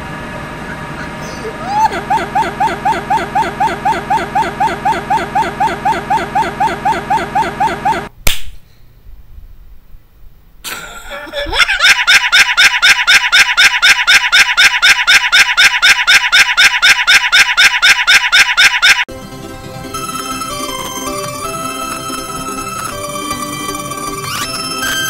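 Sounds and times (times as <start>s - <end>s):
sharp click: 8.2s - 8.6s.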